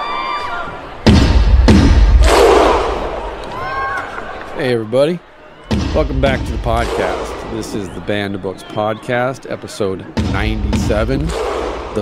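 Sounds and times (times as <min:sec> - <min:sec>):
heavy booming impact: 0:01.1 - 0:03.2, 0:05.7 - 0:07.7, 0:10.2 - 0:12.0.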